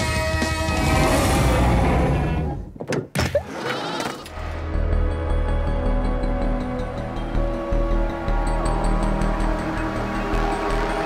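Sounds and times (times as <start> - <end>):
low ambient music drone: 4.4 - 11.0.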